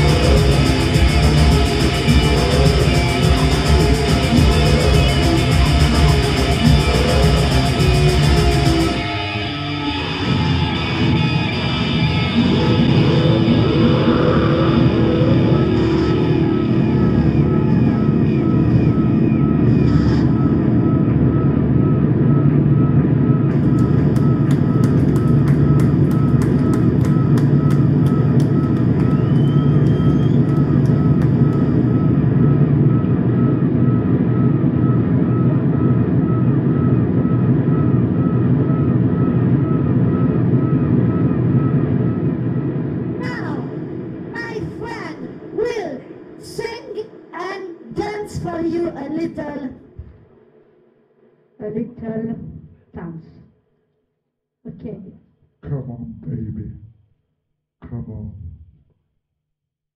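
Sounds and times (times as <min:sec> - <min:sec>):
distorted guitar and synth drone: 0:00.0 - 0:49.3.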